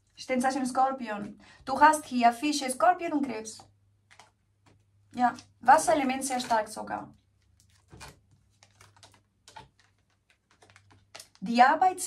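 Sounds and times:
cards clicking and tapping: 0:04.0 - 0:05.5, 0:07.4 - 0:11.4.

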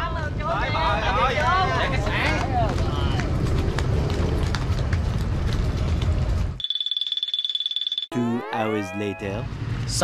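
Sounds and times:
wind rumbling on microphone: 0:00.0 - 0:06.6
finely pulsing high tone: 0:08.1 - 0:09.4.

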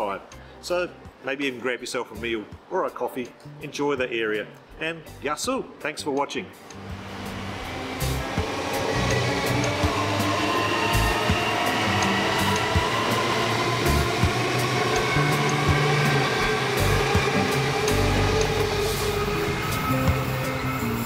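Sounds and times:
background music: 0:00.0 - 0:21.0
electric train passing: 0:06.6 - 0:21.0.

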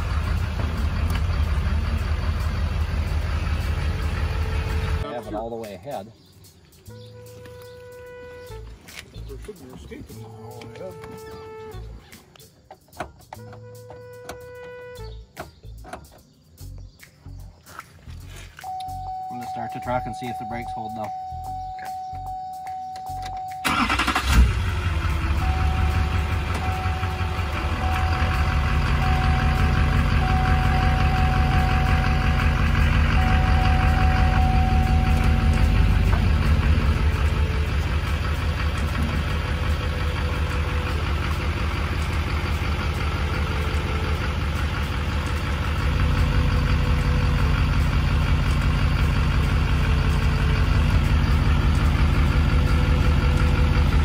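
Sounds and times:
truck engine cranking and idling: 0:00.0 - 0:54.0
dashboard warning chime: 0:18.6 - 0:24.1, 0:25.4 - 0:37.8.

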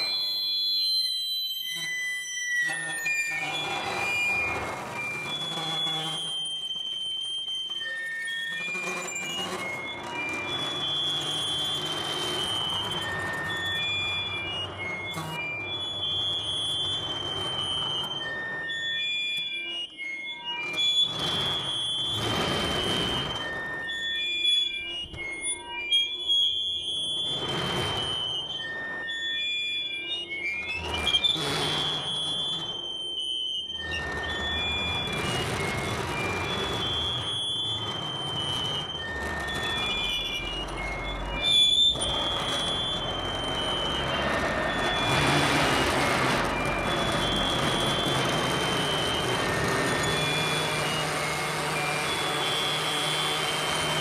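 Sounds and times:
high-pitched feedback tones: 0:00.0 - 0:54.0
rising whine: 0:06.2 - 0:54.0.

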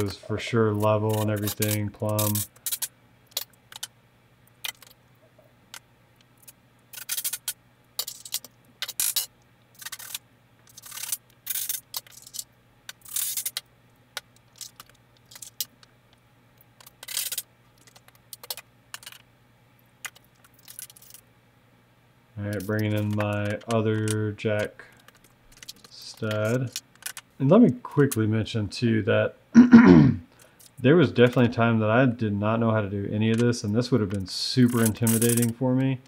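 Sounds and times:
faint steady hum: 0:00.0 - 0:36.0.

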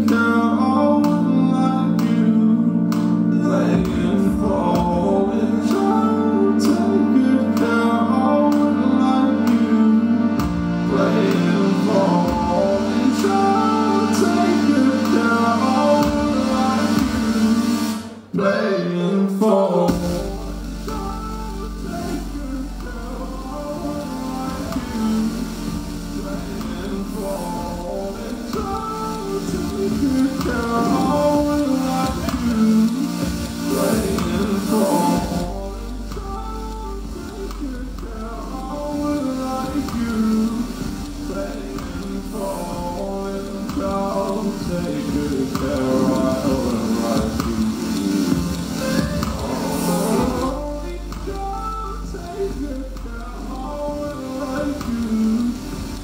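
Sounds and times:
deep steady sub-bass: 0:00.0 - 0:18.2, 0:19.9 - 0:56.0
keyboard chords: 0:00.0 - 0:56.0
wordless layered singing: 0:00.0 - 0:56.0.

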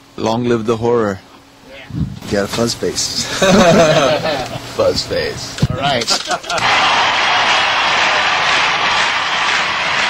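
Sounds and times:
loud static hiss: 0:00.0 - 0:10.0.

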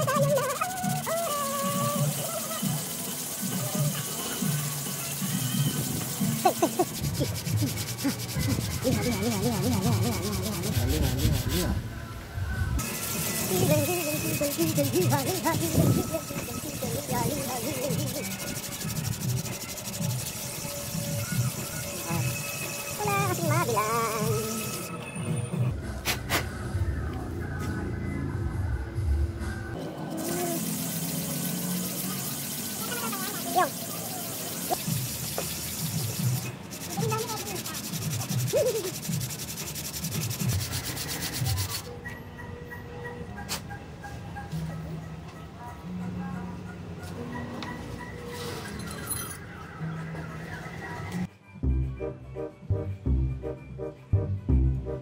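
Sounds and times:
metal part rubbing on sandpaper: 0:00.0 - 0:11.8, 0:12.8 - 0:24.9, 0:30.1 - 0:41.9
background music: 0:00.0 - 0:55.0.

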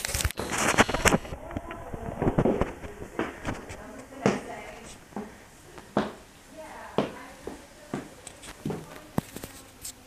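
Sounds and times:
microphone handling noise: 0:00.0 - 0:06.2.

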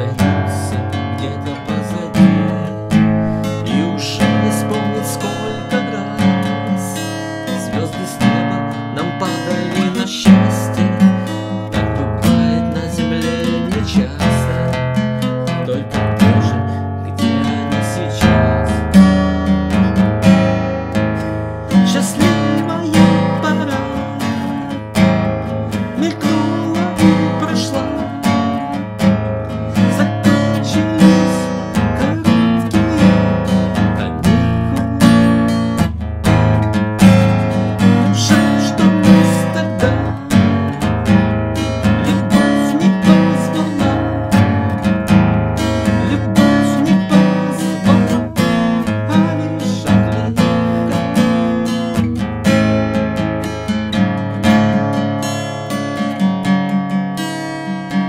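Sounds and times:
man singing: 0:00.0 - 0:52.6
acoustic guitar strumming: 0:00.0 - 0:58.0.

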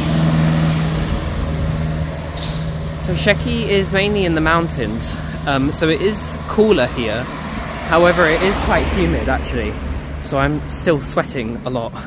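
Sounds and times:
van engine passing: 0:00.0 - 0:12.0.

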